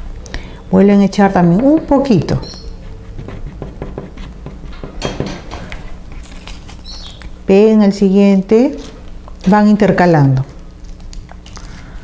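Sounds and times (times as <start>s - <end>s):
low steady hum: 0.0s - 12.0s
paper rustling: 6.1s - 7.3s, 10.7s - 12.0s.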